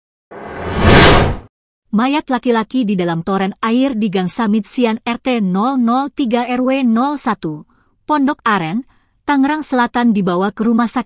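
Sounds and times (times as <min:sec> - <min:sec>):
whoosh sound effect: 0:00.3 - 0:01.5.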